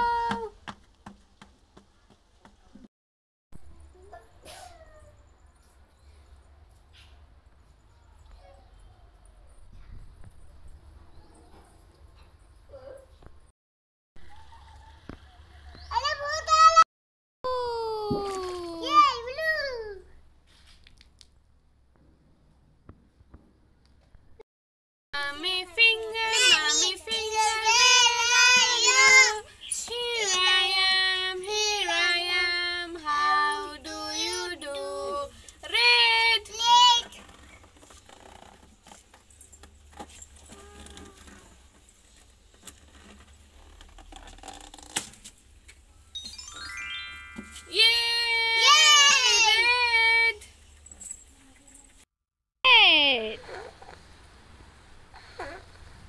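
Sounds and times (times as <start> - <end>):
children's song in a high voice: 25.2 - 37.1, 46.2 - 50.2
rising run of tones: 46.0 - 47.8.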